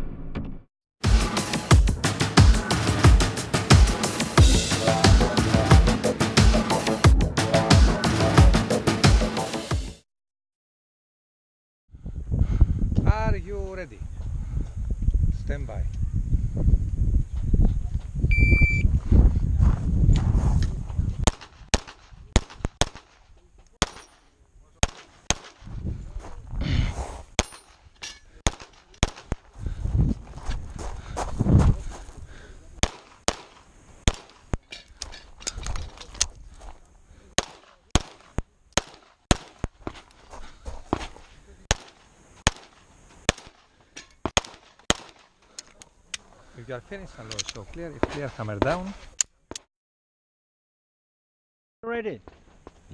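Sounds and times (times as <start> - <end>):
shot timer beep: 18.3 - 18.9
pistol shots: 21.2 - 23.2, 23.8 - 24.2, 24.8 - 25.6, 28.4 - 29.4, 32.8 - 34.5, 37.4 - 39.7, 41.7 - 43.6, 44.3 - 45.3.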